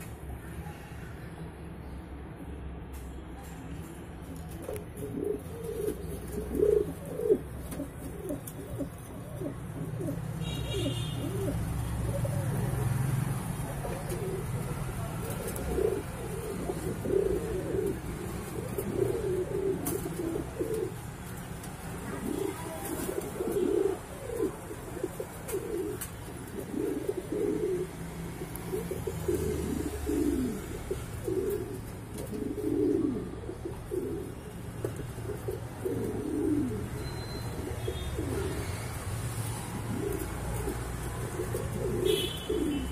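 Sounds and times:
pigeons cooing: 0:04.6 - 0:42.9.

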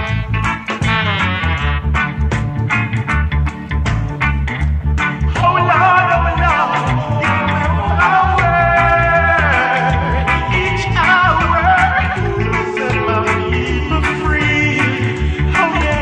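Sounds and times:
reggae song with sung vocals: 0:00.0 - 0:16.0.

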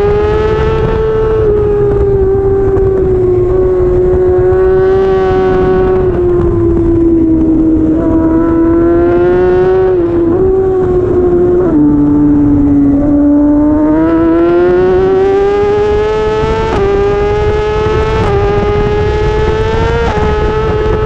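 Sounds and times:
racing motorcycle engine: 0:00.0 - 0:21.0.

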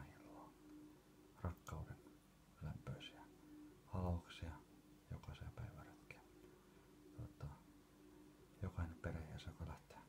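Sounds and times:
person whispering: 0:00.0 - 0:00.6, 0:01.4 - 0:06.3, 0:07.2 - 0:07.7, 0:08.6 - 0:10.0
faint steady hum: 0:00.0 - 0:10.0.

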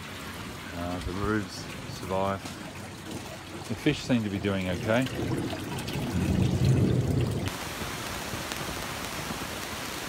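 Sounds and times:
water splashing into tank: 0:01.4 - 0:07.5.

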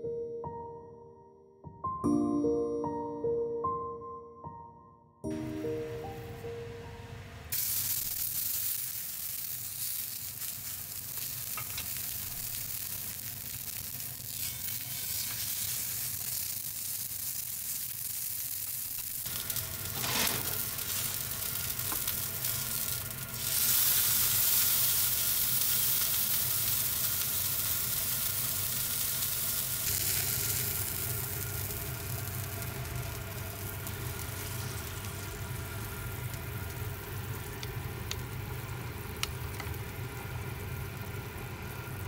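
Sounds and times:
beef sizzling in frying pan: 0:07.5 - 0:42.0.

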